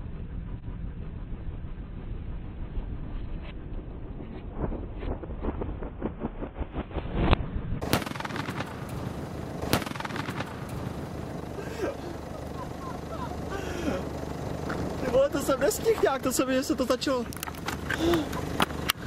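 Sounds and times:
fireball crackling and popping: 0.8 - 12.6
sharp bangs: 4.5 - 11.6.

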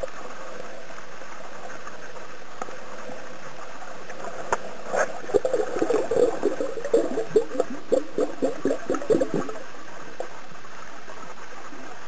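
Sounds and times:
underwater bubbling: 0.0 - 12.0
underwater hiss: 2.1 - 10.7.

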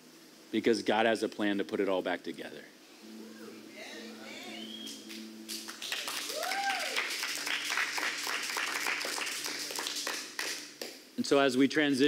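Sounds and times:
low hum: 2.8 - 5.8
congregation applauding: 4.8 - 10.9.

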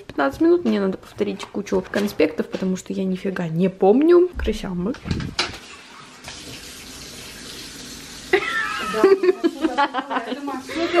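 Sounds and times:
dishes being washed: 0.2 - 11.0
tap running into a sink: 4.4 - 7.8.

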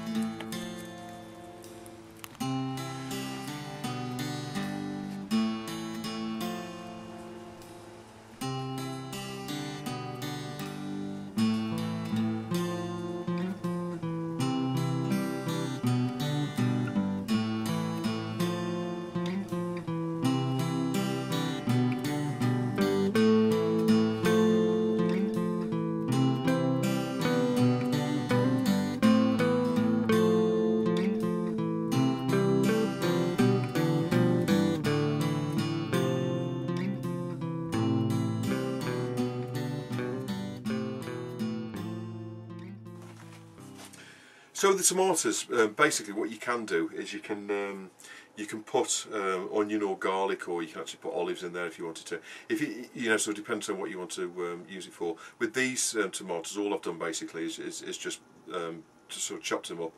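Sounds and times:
acoustic guitar music: 0.0 - 57.3.

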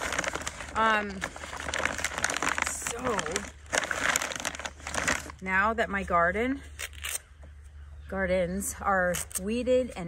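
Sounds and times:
plastic bag crinkling: 0.0 - 5.6.

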